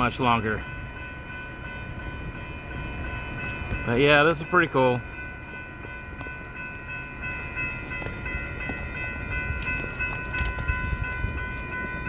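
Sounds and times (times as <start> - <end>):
train cars rumbling: 0.0 - 12.0.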